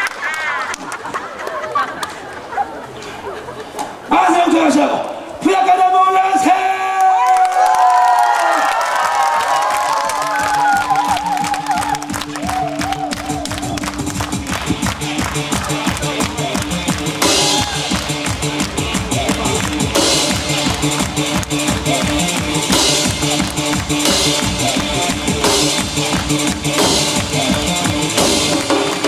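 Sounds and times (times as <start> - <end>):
backing music: 10.0 - 29.0
barrel drums beaten fast: 13.9 - 29.0.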